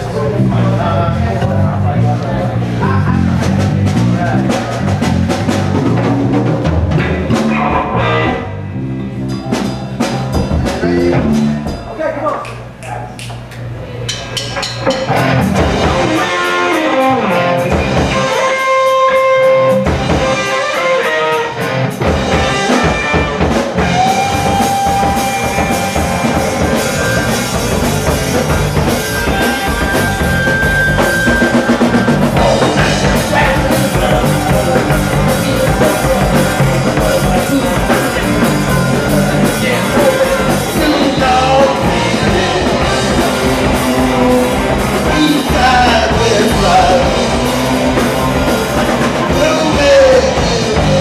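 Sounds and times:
electric guitars: 0.0 - 11.9, 14.8 - 51.0
bass guitar: 0.0 - 51.0
drum kit: 0.0 - 51.0.

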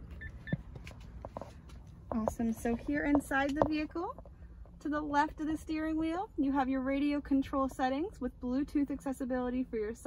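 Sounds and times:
car warning beeps: 0.0 - 0.7.

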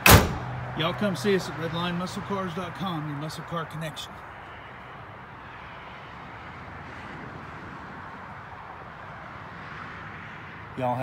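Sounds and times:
low outdoor rush: 0.0 - 11.0.

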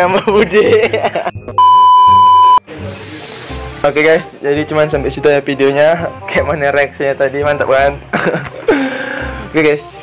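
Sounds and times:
high censor bleep: 1.6 - 2.6.

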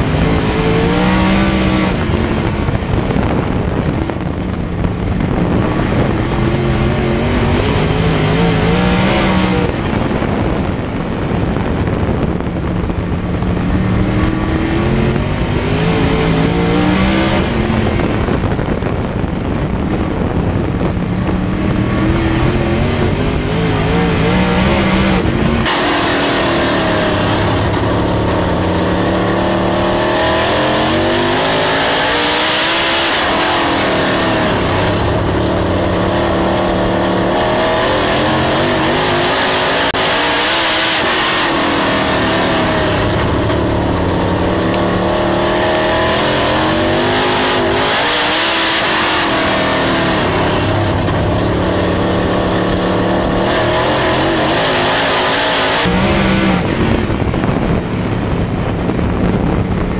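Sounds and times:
race car engine revving: 0.0 - 18.9, 19.5 - 57.8.

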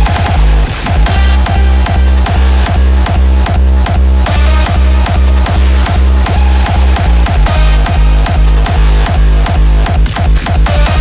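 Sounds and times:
distorted kick drum: 0.0 - 11.0
synths: 0.0 - 11.0.

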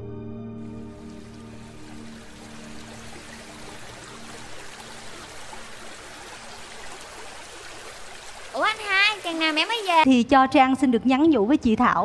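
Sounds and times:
flowing water: 0.8 - 10.1.

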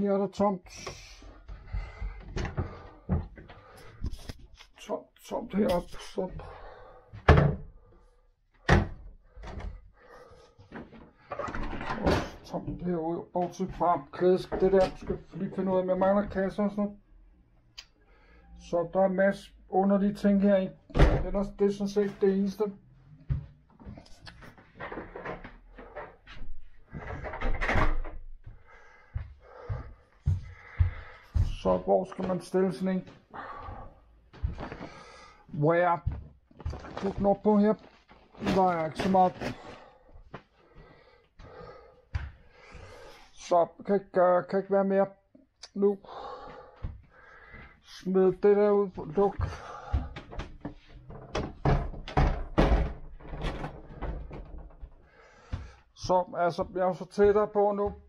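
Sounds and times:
footsteps on wooden floor: 1.3 - 4.2, 23.1 - 27.4, 28.2 - 35.4, 36.0 - 43.1, 46.3 - 47.8, 48.9 - 52.3, 52.9 - 58.0.

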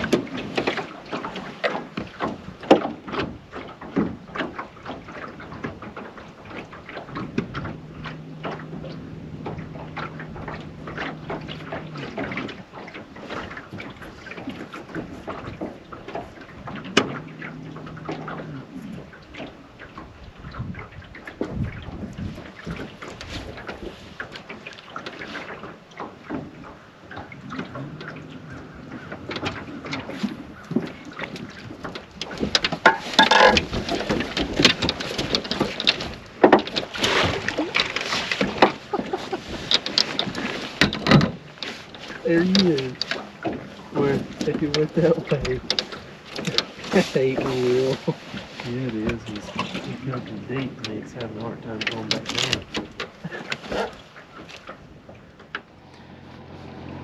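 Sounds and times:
knocks and clicks in boat: 0.0 - 57.0.

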